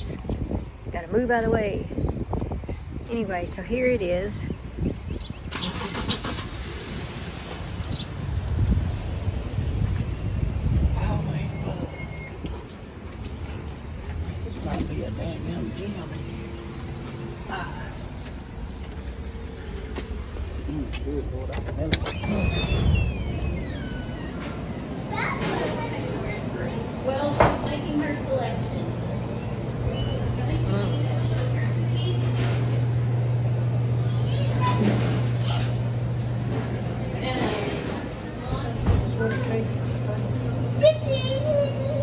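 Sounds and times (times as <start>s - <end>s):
busy shop hum: 0.0s - 42.0s
low uneven rumble: 6.3s - 42.0s
child babbling and calling out: 40.8s - 42.0s.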